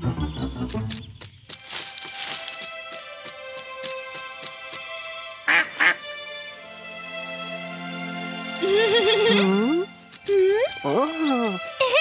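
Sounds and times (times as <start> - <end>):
cartoon background music: 0.0 - 1.2, 2.4 - 12.0.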